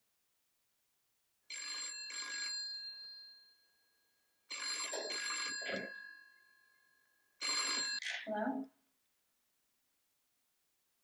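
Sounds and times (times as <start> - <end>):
telephone bell ringing: 1.5 - 3.4, 4.5 - 6.4, 7.4 - 8.0.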